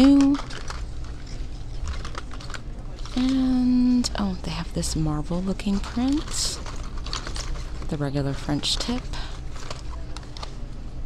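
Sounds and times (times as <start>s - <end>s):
blister packs clicking and rattling: 0.0s - 10.6s
low steady hum: 0.0s - 11.0s.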